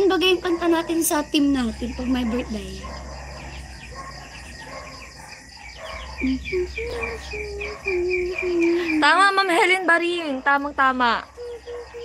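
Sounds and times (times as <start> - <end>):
night insects chirping: 0.0 - 12.0.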